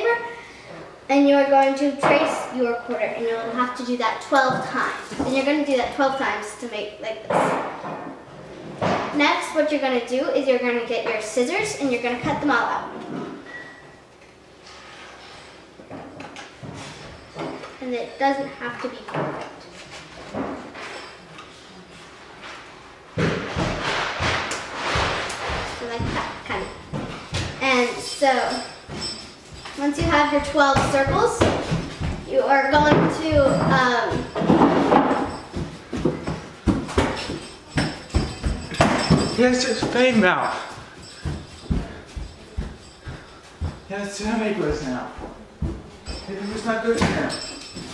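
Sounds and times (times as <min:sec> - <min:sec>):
knocks and paper rustles: 0:23.2 - 0:27.8
footsteps on hard floor: 0:23.2 - 0:47.9.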